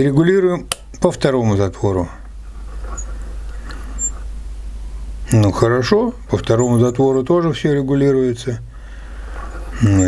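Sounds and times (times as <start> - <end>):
low electrical hum: 0.0 - 10.0
faint high squeaks of knob: 3.8 - 4.2.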